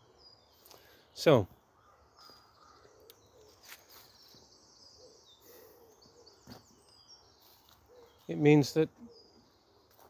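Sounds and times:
small birds chirping and trilling: 0.0s - 10.0s.

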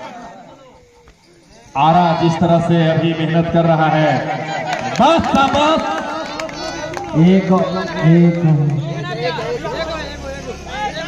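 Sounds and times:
man commentating: 1.8s - 6.1s.

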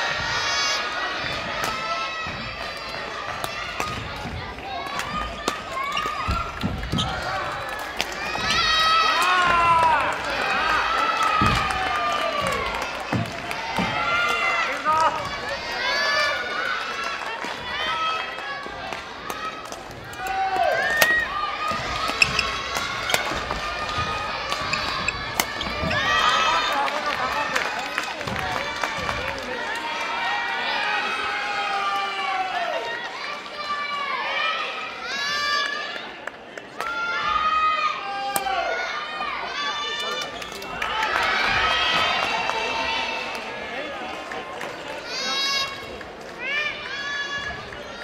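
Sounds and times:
children shouting: 0.0s - 27.5s
rackets hitting shuttlecock: 20.9s - 21.3s.

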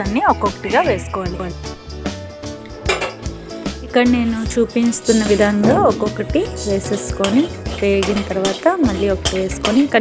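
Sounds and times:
background music: 0.0s - 10.0s
sharp knocks: 5.6s - 6.4s.

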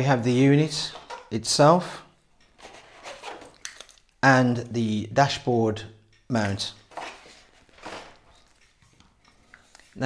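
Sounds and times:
plastic tray scraping a mat: 2.6s - 3.6s.

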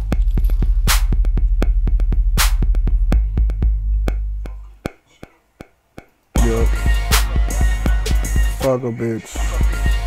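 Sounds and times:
deep bass tone: 0.0s - 4.8s, 6.4s - 8.6s
drum machine hits: 0.0s - 5.0s, 5.6s - 8.7s.

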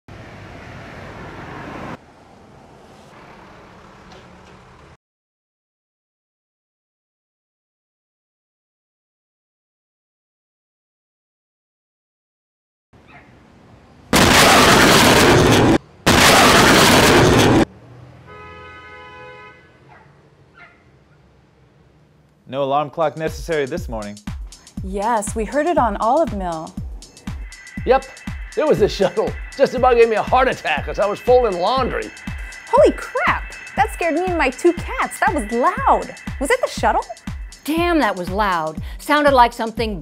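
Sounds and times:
street traffic rumble: 0.1s - 5.0s, 13.0s - 22.4s, 25.0s - 38.6s
sonic booms: 14.2s - 17.7s
steady tone: 25.0s - 38.4s.

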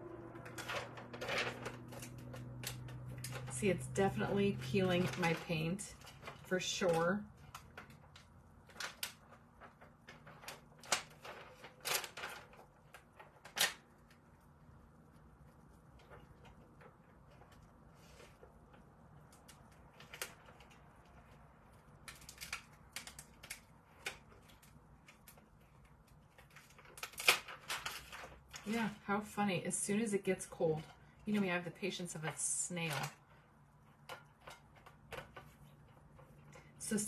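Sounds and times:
paper crackling as peeled: 0.0s - 29.0s.

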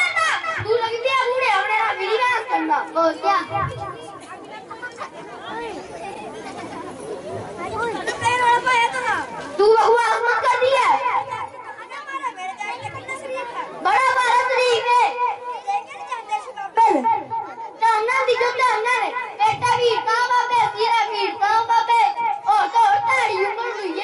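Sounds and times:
children speaking over loudspeakers: 0.0s - 24.0s.

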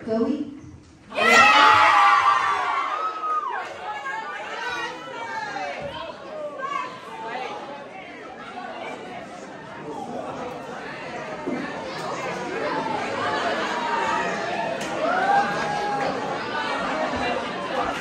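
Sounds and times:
crowd chatter in large hall: 0.0s - 18.0s.

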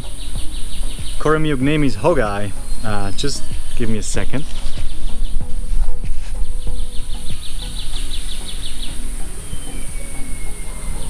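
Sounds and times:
high-pitched insect drone: 0.0s - 11.0s
rapid evenly spaced chirps: 0.0s - 11.0s.

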